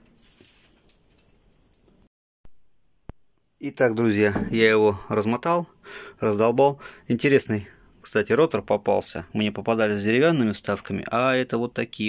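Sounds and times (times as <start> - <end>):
faint rustle: 0.0 - 1.4.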